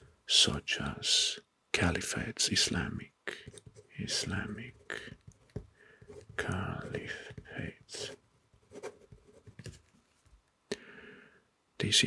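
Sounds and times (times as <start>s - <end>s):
pen scratching on paper: 3.4s - 10.0s.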